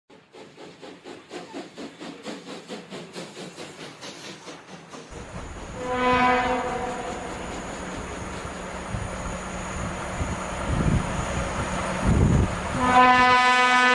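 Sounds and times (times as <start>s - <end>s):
locomotive rumble: 0.1s - 13.9s
rhythmic train wheel clatter: 0.1s - 13.9s
locomotive horn blast: 5.8s - 7.4s, 12.7s - 13.9s.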